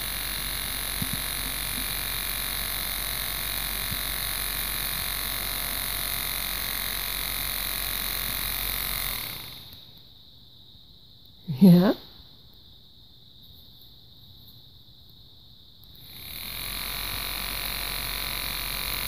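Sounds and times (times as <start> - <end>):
toy motor buzzing: 0.0 - 10.0, 15.8 - 19.0.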